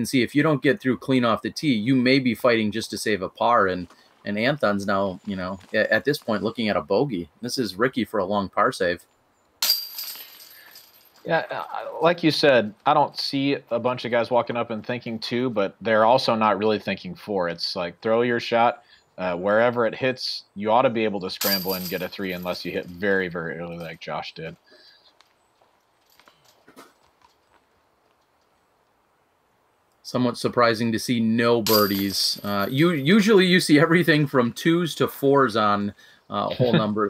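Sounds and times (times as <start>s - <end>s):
faint outdoor ambience: 0.0s - 37.0s
disc crashing into metal chains: 9.6s - 11.2s.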